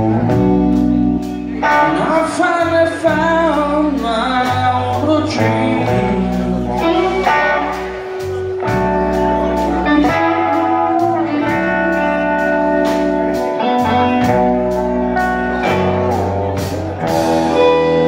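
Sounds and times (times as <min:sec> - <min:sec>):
bass guitar: 0:00.0 - 0:18.0
electric guitar sustained notes: 0:00.0 - 0:18.0
drum kit cymbals beat: 0:05.9 - 0:18.0.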